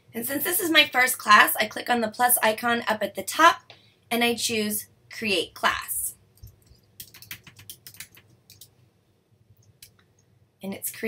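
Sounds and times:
typing on computer keyboard: 6.4s - 8.7s.

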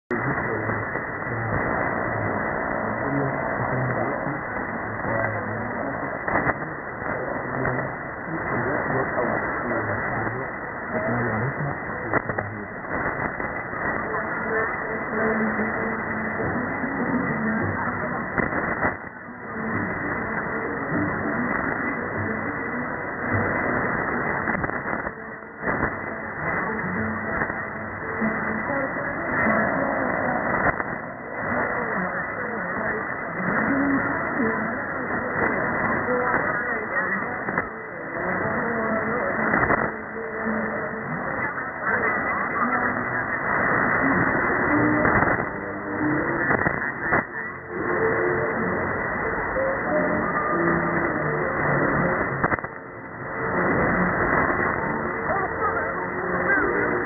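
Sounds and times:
radio hiss and static: 0.0s - 57.0s
faint radio voice: 0.1s - 57.0s
static crash: 0.1s - 57.0s.

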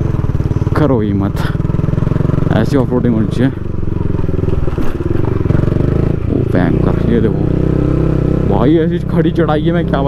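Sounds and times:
motorcycle engine under load: 0.0s - 10.0s.

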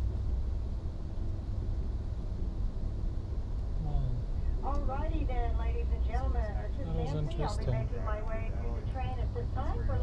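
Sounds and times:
train running low rumble: 0.0s - 10.0s.

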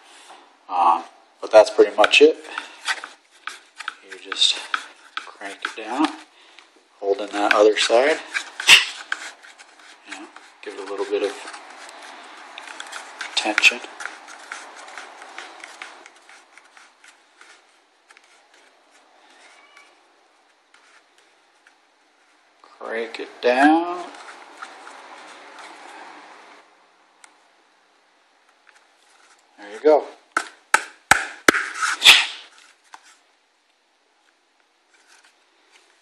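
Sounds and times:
plastic rubbing on rubber: 1.5s - 6.3s, 7.1s - 22.5s, 23.8s - 26.7s, 28.7s - 33.3s, 34.9s - 36.0s
scuffing: 7.3s - 19.7s.

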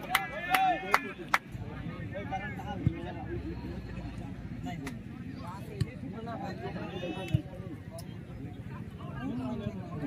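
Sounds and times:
crowd talking and calling: 0.0s - 10.0s.

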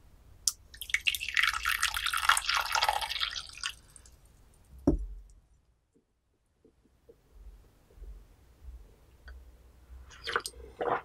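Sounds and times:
liquid pouring and splashing: 0.8s - 3.8s
low thump: 4.8s - 5.3s.

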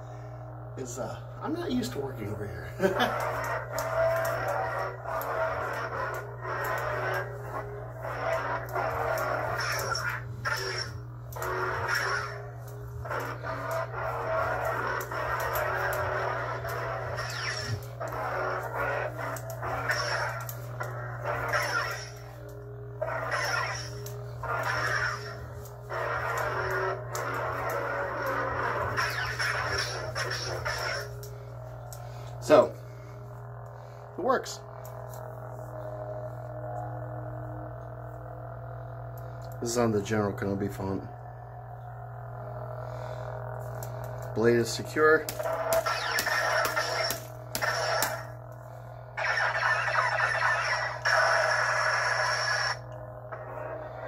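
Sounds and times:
lightsaber hum: 0.0s - 54.0s
lightsaber swing sounds: 2.8s - 31.3s, 45.2s - 48.4s, 49.2s - 52.8s.

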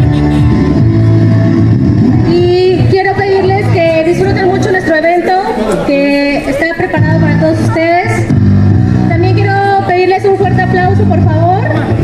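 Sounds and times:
loud music through sound system: 0.0s - 5.8s, 6.4s - 12.0s.

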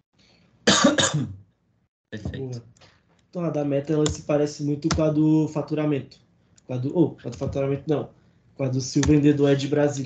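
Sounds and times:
person clearing throat: 0.7s - 1.4s.

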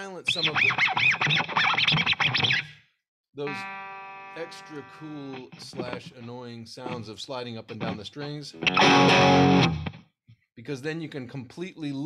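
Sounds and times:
fingers squeaking on guitar strings: 0.3s - 2.7s, 3.5s - 7.0s.

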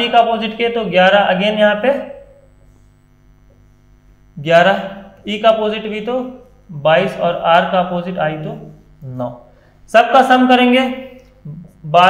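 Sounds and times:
mains hum: 0.0s - 12.0s.

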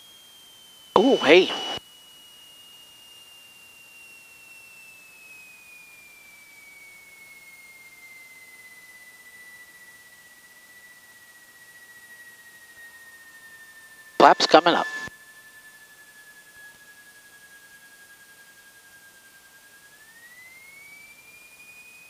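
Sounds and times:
high whine falling in pitch: 0.0s - 22.0s.

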